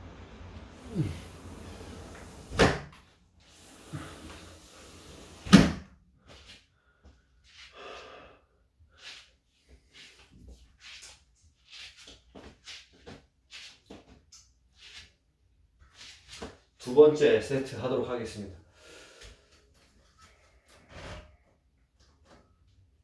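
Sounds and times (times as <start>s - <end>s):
low outdoor hum: 0.0s - 4.9s
sliding window thudding shut: 1.5s - 2.9s.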